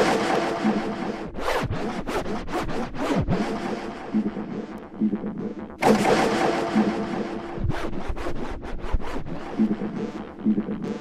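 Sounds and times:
deep downward swoops: 0.0s - 2.4s, 3.0s - 10.6s
electronic dance music: 0.0s - 11.0s
record scratch effect: 0.0s - 11.0s.

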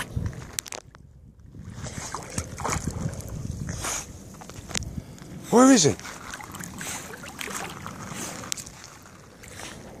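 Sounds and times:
water sloshing and splashing: 0.0s - 4.9s, 5.6s - 10.0s
dog splashing in shallow water: 1.6s - 3.3s, 6.0s - 9.9s.

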